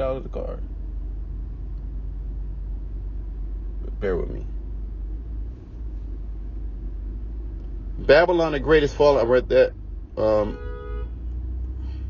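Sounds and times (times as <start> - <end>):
car interior rumble: 0.0 - 12.0.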